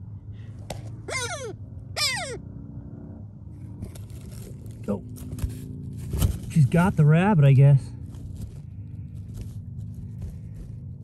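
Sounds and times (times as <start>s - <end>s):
bird of prey crying: 1.0s - 2.5s.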